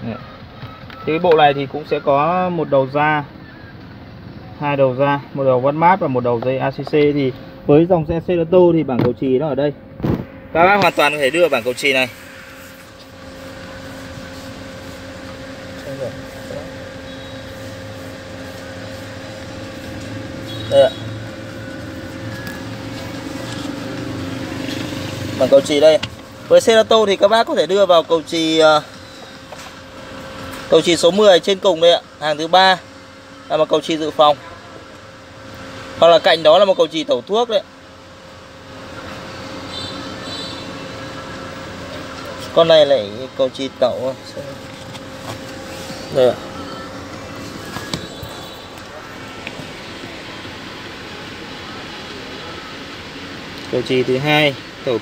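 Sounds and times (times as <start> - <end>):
car mechanical hum: 0.0 - 55.0
ventilation fan blowing: 0.0 - 55.0.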